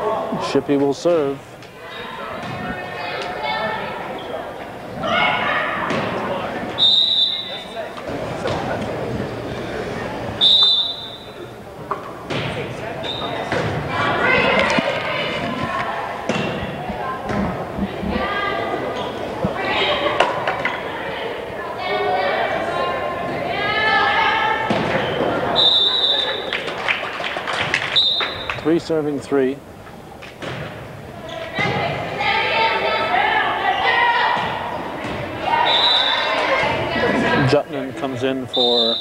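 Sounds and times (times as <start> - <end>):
people shouting: 5.0 - 6.2, 31.6 - 34.7, 35.3 - 37.4
referee's whistle: 6.8 - 7.8, 10.4 - 11.4, 13.0 - 13.5, 25.0 - 26.5, 27.9 - 28.6, 35.5 - 36.3, 38.5 - 39.0
volleyball struck and thudding: 13.4 - 13.9.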